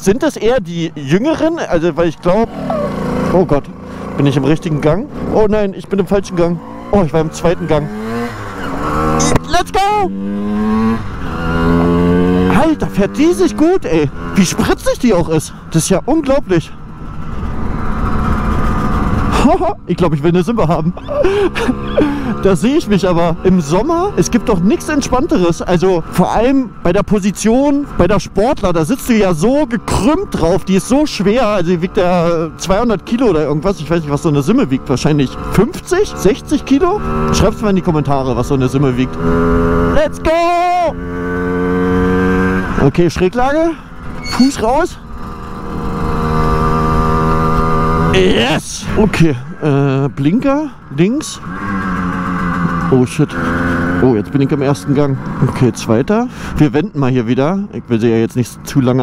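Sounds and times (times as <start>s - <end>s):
two-stroke moped engine running: 1.0s - 14.8s, 15.5s - 19.7s, 20.6s - 27.5s, 28.9s - 49.2s, 50.7s - 55.7s.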